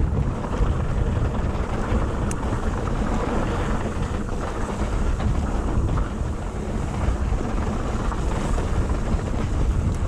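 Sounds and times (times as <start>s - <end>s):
bike tyres rolling on dirt: 0.0s - 10.0s
wind on camera microphone: 0.0s - 10.0s.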